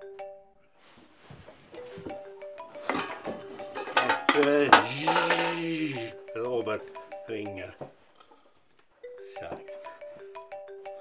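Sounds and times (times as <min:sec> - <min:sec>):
phone ringtone melody: 0:01.8 - 0:03.8, 0:04.5 - 0:07.8, 0:09.0 - 0:11.0
man groaning: 0:04.8 - 0:06.2.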